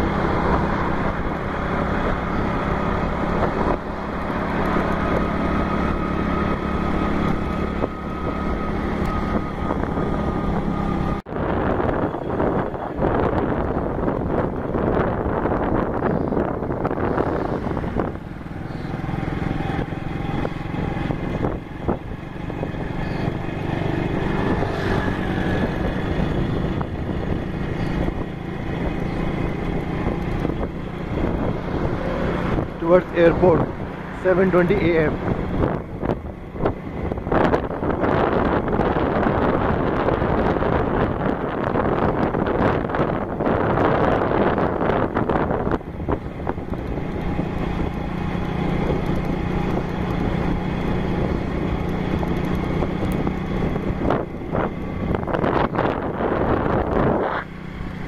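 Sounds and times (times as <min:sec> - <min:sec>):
vehicle engine and road noise: 0:00.0 - 0:58.0.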